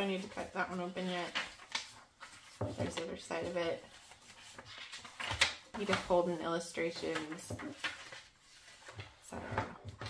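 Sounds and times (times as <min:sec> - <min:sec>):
paper pages rustling: 0:00.0 - 0:10.0.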